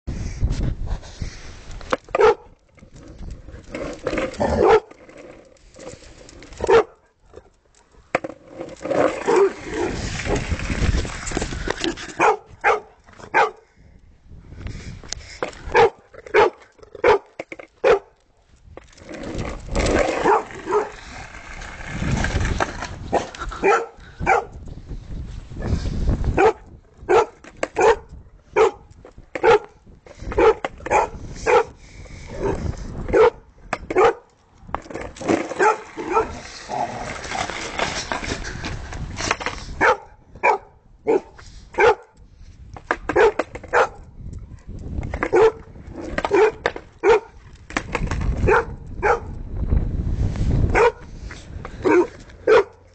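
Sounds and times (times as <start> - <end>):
dog barking: 2.2 - 2.5, 6.6 - 7.0, 12.2 - 13.6, 15.7 - 18.1, 20.2 - 20.9, 23.6 - 24.5, 26.4 - 28.8, 29.4 - 29.7, 30.4 - 31.7, 33.1 - 33.4, 34.0 - 34.2, 35.6 - 36.3, 39.8 - 42.2, 43.2 - 44.0, 45.3 - 45.6, 46.3 - 47.4, 48.5 - 49.3, 50.7 - 51.0, 51.8 - 52.8.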